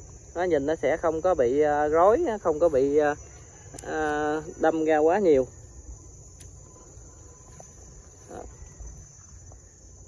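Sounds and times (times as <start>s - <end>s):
high-pitched insect chirring: 0.0s - 10.0s
faint sharp click: 6.4s - 6.6s.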